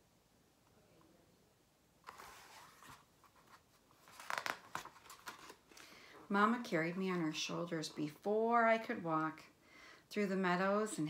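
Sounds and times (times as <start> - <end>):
paper rustling and sliding: 2.0 - 5.9.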